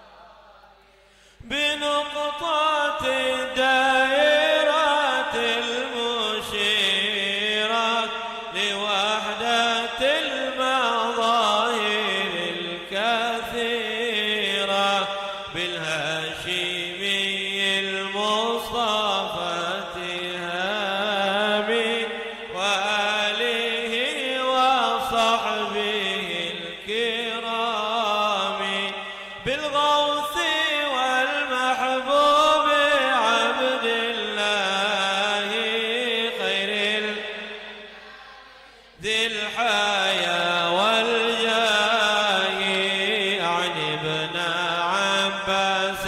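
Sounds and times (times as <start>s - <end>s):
man chanting into a microphone: 0.0s - 46.0s.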